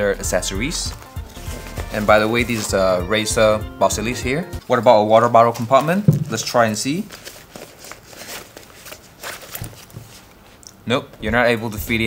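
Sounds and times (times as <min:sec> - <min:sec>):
nylon fabric rustling: 0:00.9 - 0:03.0, 0:05.4 - 0:10.6.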